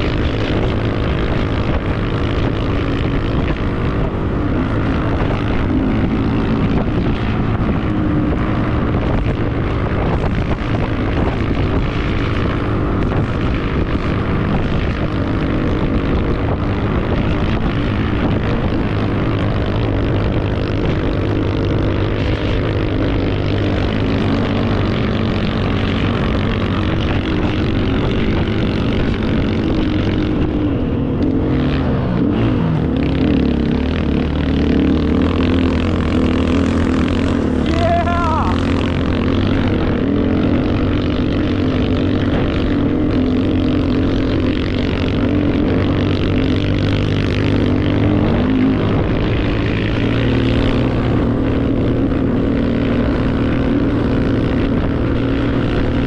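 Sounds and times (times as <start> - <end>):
motorbike engine running: 0.0 - 56.0.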